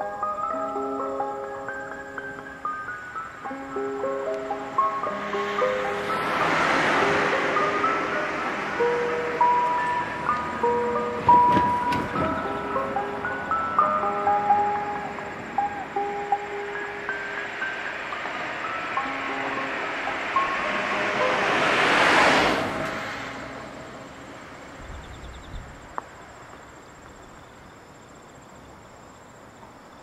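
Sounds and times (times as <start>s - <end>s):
chime-like electronic melody: 0.0s - 22.1s
broad swell of noise: 1.0s - 11.5s, 12.3s - 25.0s
knocks: 11.3s - 12.5s.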